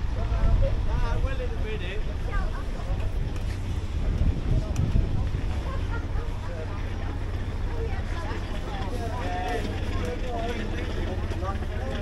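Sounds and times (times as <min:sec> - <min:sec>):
people talking: 0:00.0 - 0:12.0
steady low rumble: 0:00.0 - 0:12.0.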